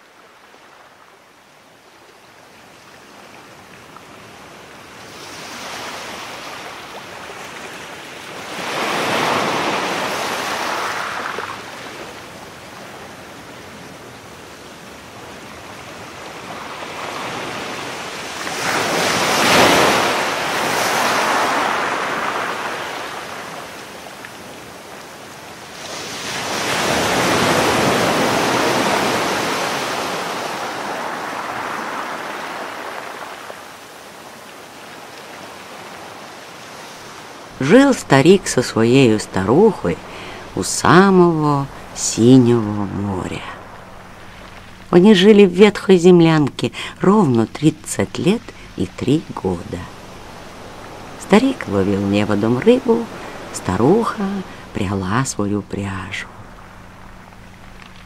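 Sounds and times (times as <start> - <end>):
sea waves washing in: 0.0 - 58.0.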